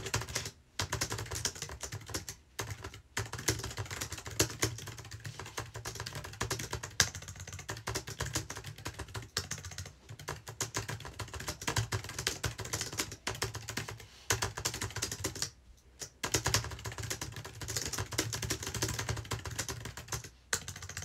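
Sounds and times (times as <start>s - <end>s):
fast keyboard typing: 0.0s - 21.0s.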